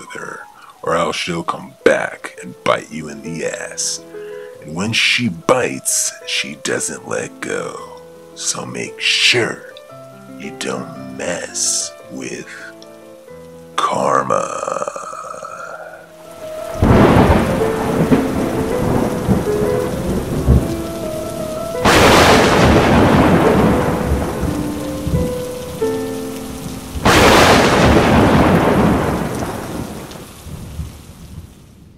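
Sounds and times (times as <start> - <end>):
steady rain: 0.0 - 31.9
held low music notes: 16.1 - 30.2
thunder claps rumbling: 16.4 - 31.9.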